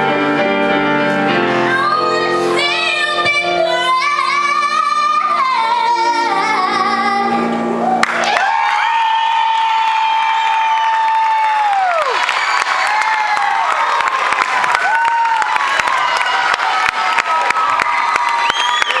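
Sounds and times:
audience clapping and cheering: 7.8 - 19.0
high whoops: 7.8 - 19.0.

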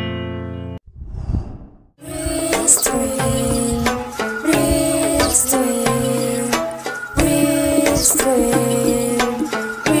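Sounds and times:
soft breathy whoosh: 0.9 - 2.0.

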